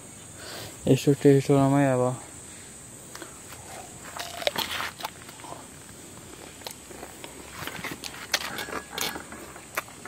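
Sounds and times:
crisp crunching of mango bite: 4.2s - 5.6s.

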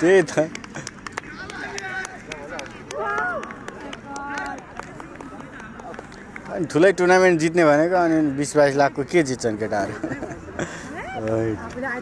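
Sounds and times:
men calling and talking: 0.0s - 12.0s.

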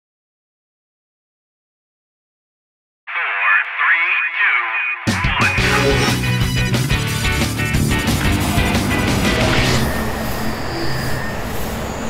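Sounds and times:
voice over a radio: 3.1s - 6.2s.

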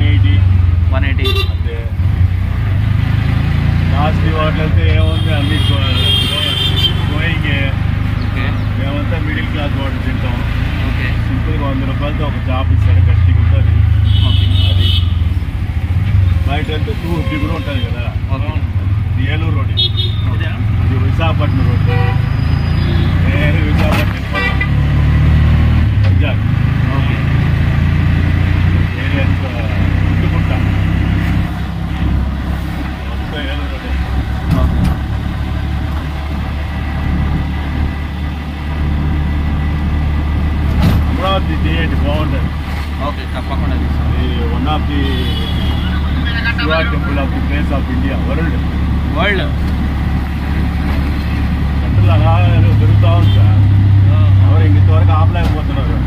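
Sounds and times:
auto-rickshaw engine running: 0.0s - 56.0s.

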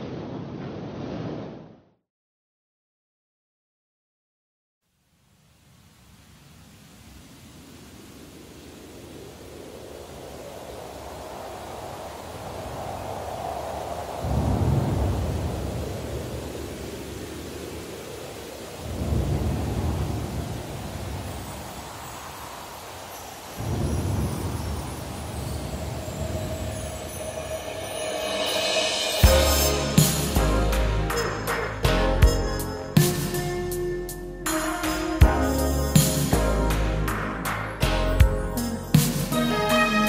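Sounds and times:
rain hiss: 4.9s - 31.9s, 32.6s - 40.0s
deep rolls of thunder: 12.4s - 17.8s, 18.8s - 21.4s, 23.6s - 29.1s.

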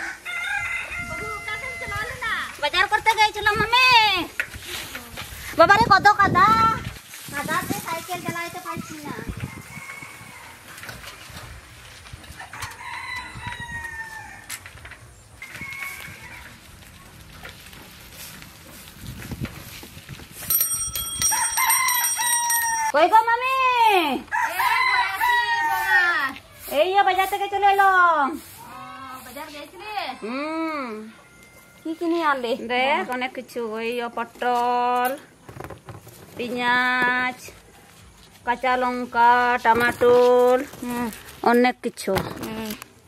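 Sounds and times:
rooster crowing: 0.0s - 2.2s, 9.4s - 10.8s, 12.4s - 14.6s, 15.4s - 16.6s, 21.2s - 23.0s, 24.3s - 26.4s, 29.8s - 32.2s
bicycle bell ringing: 20.4s - 23.0s.

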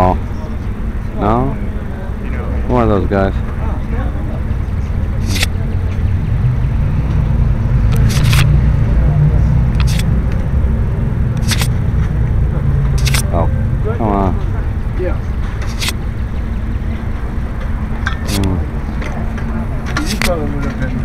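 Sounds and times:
distant voices: 0.0s - 21.0s
vehicles idling: 0.0s - 21.0s
camera shutters clicking: 5.2s - 5.5s, 7.9s - 8.5s, 9.7s - 10.1s, 11.4s - 11.7s, 13.0s - 13.3s, 15.6s - 16.0s, 18.3s - 18.5s, 20.0s - 20.3s.

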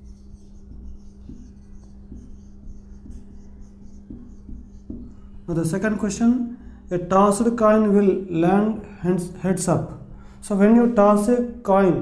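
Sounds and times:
marker writing on whiteboard: 0.0s - 8.0s
steady low hum: 0.0s - 12.0s.

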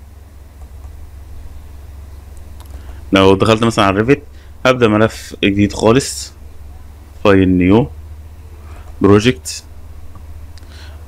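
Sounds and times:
low hum: 0.0s - 11.0s
faint clicks: 0.6s - 1.0s, 2.3s - 3.0s, 10.1s - 10.7s.

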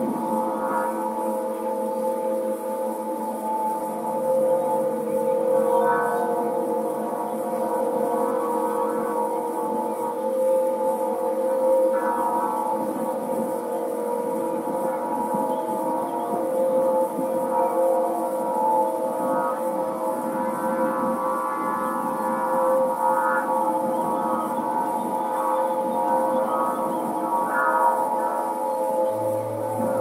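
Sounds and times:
wind harp drone: 0.0s - 30.0s.

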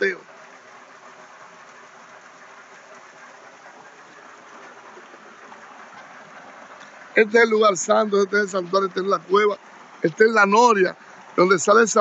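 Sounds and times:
water pouring into pool: 3.6s - 12.0s.

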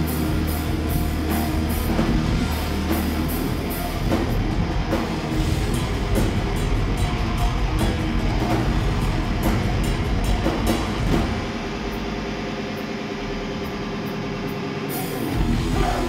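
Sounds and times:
drums with crashing cymbals: 0.0s - 12.3s, 14.4s - 16.0s
guitars and bass: 0.0s - 16.0s.

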